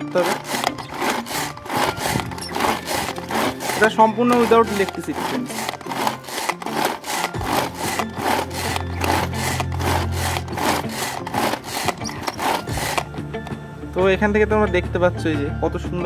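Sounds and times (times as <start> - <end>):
hand-pull vegetable chopper whirring: 0.0 - 13.6.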